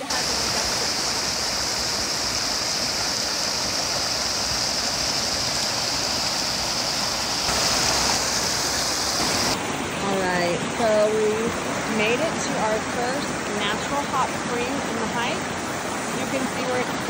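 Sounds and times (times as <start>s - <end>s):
creek rushing over rocks: 0.0s - 17.0s.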